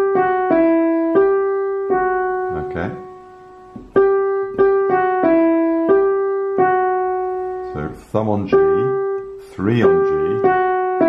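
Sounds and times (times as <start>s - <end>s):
digital piano melody: 0.0s - 11.0s.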